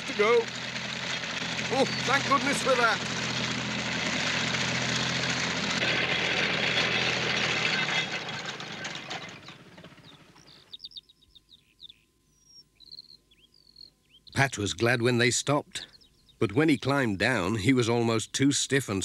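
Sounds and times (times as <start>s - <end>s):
tractor engine humming: 0.0s - 10.8s
high bird chirps: 1.8s - 2.2s, 9.4s - 14.4s.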